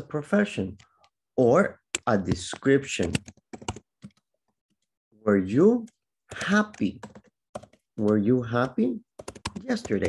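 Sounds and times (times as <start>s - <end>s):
keyboard typing: 1.8s - 4.9s, 5.8s - 10.0s.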